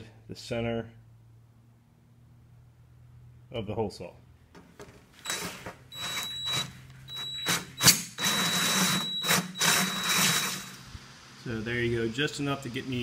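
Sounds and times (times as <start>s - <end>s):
drill motor whine: 5.2s - 10.8s.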